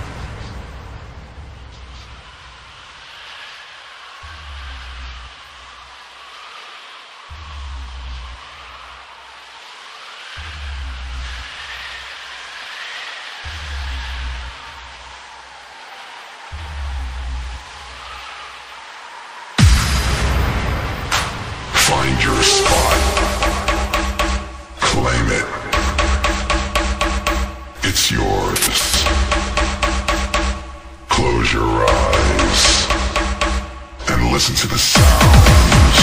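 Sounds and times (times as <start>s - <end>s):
deep bass note pulsing: 21.9s - 24.8s.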